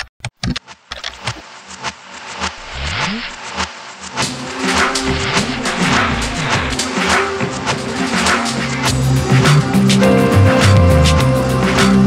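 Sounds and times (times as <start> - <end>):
electronic music with drums: 2.2 - 12.0
low rising swoosh: 2.5 - 9.4.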